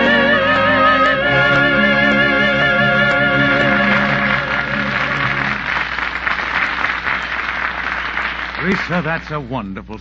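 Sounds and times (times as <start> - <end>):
held song chord: 0.0 - 5.7
audience applause: 0.7 - 9.4.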